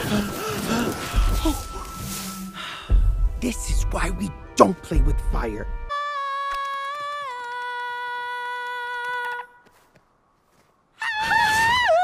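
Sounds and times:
rough wordless wail: 11.0s - 12.0s.

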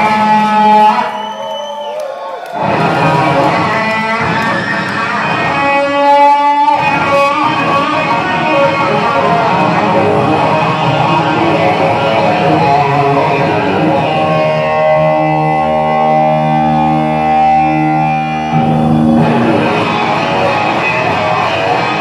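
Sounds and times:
blues rock band playing: 0.0s - 1.2s, 2.6s - 22.0s.

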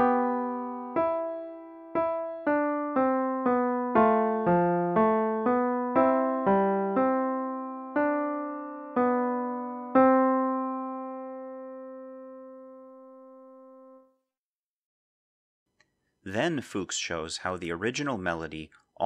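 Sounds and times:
piano counterpoint: 0.0s - 14.2s.

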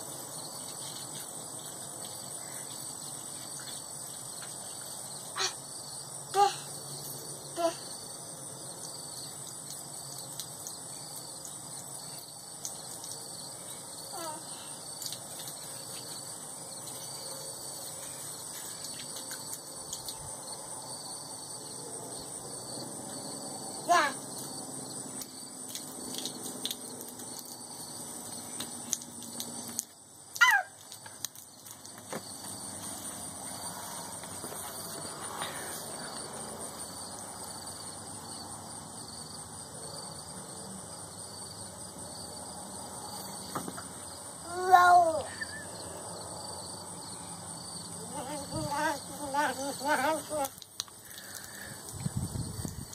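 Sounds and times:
crickets and insects trilling: 0.0s - 52.9s
short cry falling in pitch: 30.4s - 30.8s.

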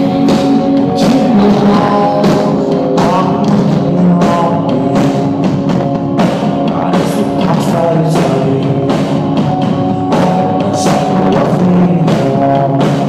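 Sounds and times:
drum beat: 0.0s - 13.0s
person singing: 0.0s - 13.0s
rock band playing live: 0.0s - 13.0s.

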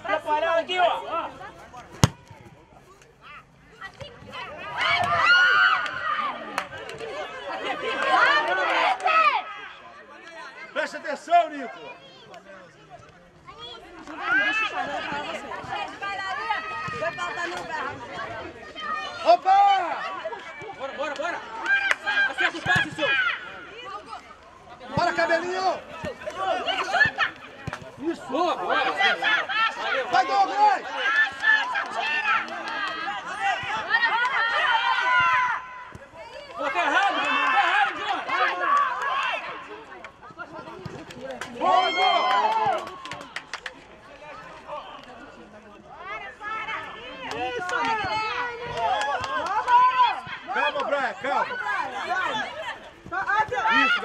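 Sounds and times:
overlapping chatter: 0.0s - 54.0s
voices shouting and calling out: 0.0s - 54.0s.

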